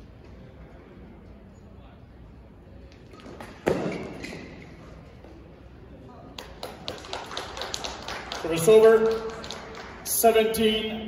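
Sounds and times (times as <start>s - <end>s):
racket hitting shuttlecock: 3.1s - 4.7s
people clapping: 6.3s - 10.8s.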